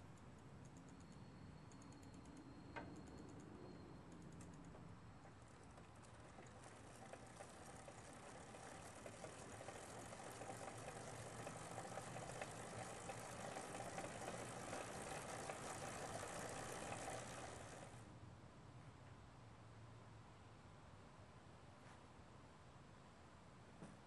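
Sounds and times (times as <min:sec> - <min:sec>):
mechanical whir with rapid ticking: 0:00.0 - 0:18.1.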